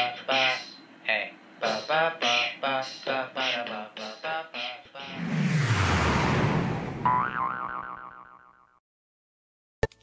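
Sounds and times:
cartoon boing sound effect: 7.0 - 8.8.

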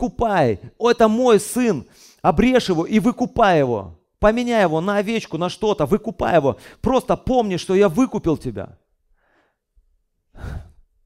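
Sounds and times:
man breathing into microphone: 10.3 - 10.9.

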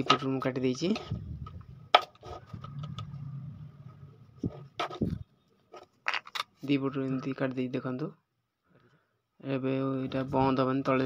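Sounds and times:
low steady hum: 1.0 - 5.5.

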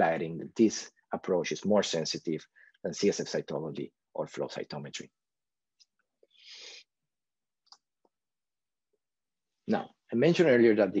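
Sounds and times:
faint breath in: 6.3 - 6.9.

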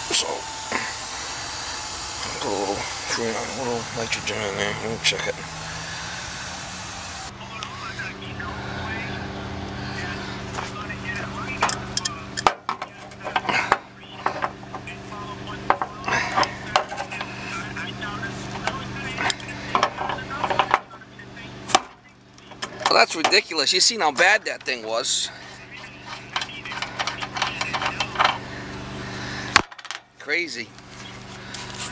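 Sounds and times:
steady low hum: 0.0 - 31.9.

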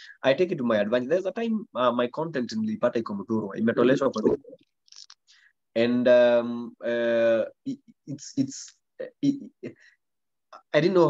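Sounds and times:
man talking over video call: 0.0 - 11.0.

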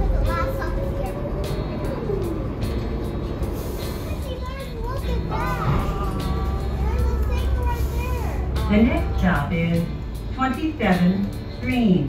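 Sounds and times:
child's high voice: 0.0 - 2.4, 4.0 - 8.5
bus engine and road rumble: 0.0 - 12.0.

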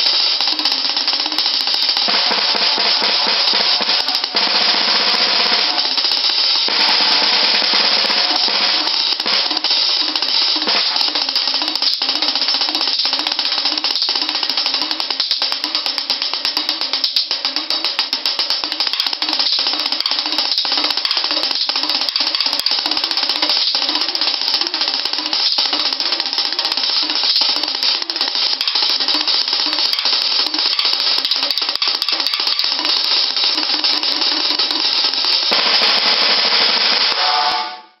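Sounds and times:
snare drum roll: 0.0 - 38.0.

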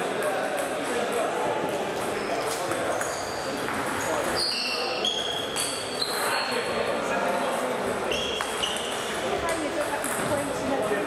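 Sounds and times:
murmur of voices: 0.0 - 11.0
short high squeaks: 4.3 - 6.6, 8.1 - 9.1
table tennis balls clicking: 8.4 - 10.9.

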